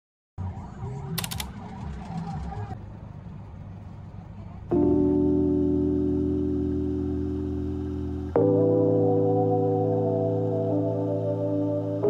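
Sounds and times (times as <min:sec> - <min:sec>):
traffic rumble inside car: 0:00.4 - 0:05.1
quick clicks: 0:01.2 - 0:01.6.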